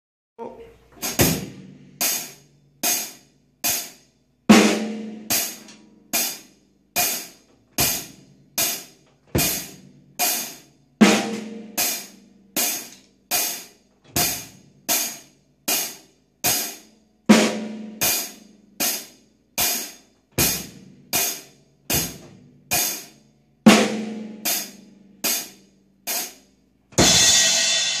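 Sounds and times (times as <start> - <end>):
heavy drum accent: 0.9 - 3.9, 4.5 - 23.1, 27.0 - 28.0
hi-hat and snare groove: 1.0 - 28.0
cymbal crash: 27.0 - 28.0.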